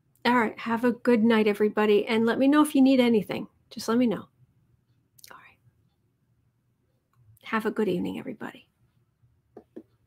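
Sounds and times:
woman speaking softly: 7.4 - 8.7.

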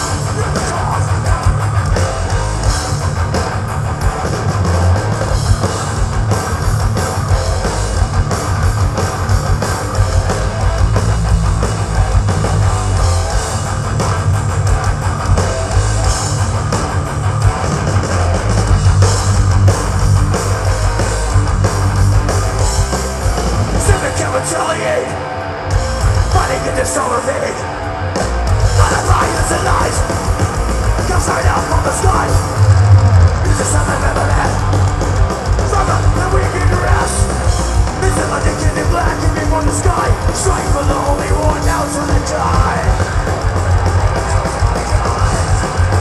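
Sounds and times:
metal band playing live: 0.0 - 46.0.

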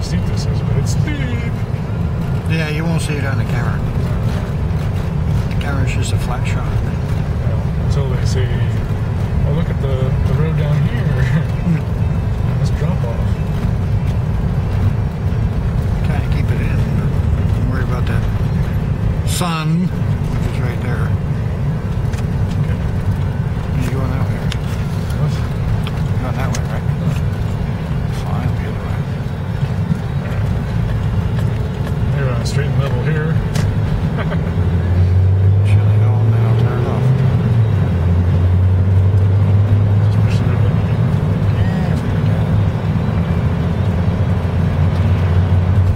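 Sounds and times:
car engine and road drone: 0.0 - 45.9.

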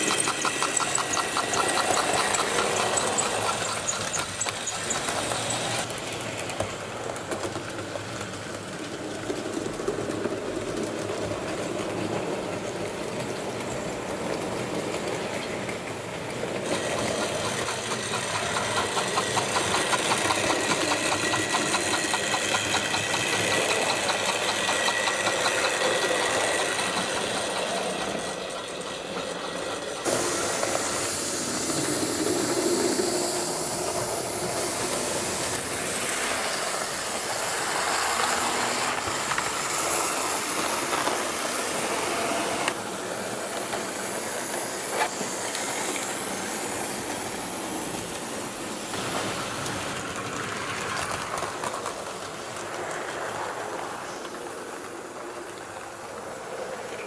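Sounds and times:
rapid fine ticking of wheels: 0.0 - 5.9, 16.7 - 28.2
model train motors whirring: 0.0 - 57.0.

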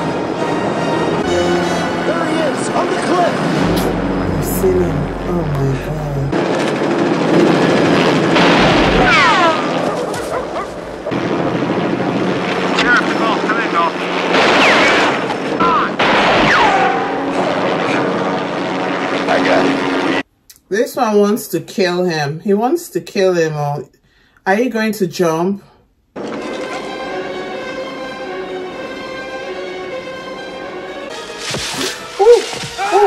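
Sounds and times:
helicopter running: 0.0 - 20.2, 26.2 - 31.1
gunshots: 6.3 - 13.4, 14.1 - 19.8.

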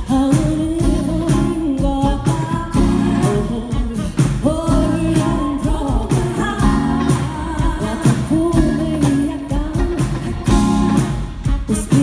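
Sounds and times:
funk band playing: 0.0 - 12.0
woman singing lead vocal: 0.0 - 12.0.

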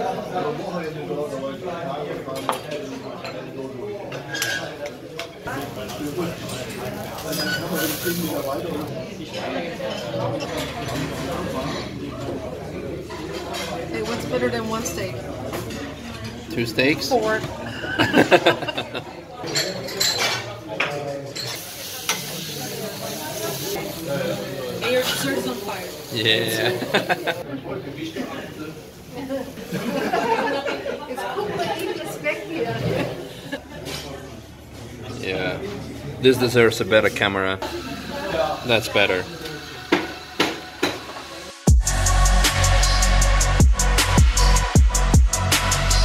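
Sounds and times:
strawberries sizzling in a pan: 5.5 - 8.9, 21.5 - 27.4.

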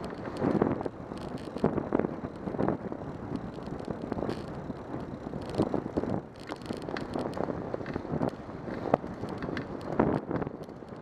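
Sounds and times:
bike rattles and clicks: 0.0 - 11.0
tyre and road noise: 0.0 - 11.0
wind on microphone: 0.0 - 11.0.

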